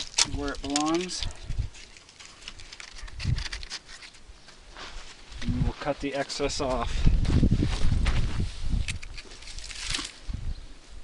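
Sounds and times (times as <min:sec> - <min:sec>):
faint rustling and handling: 0:00.0 - 0:10.3
man speaking: 0:05.4 - 0:07.0.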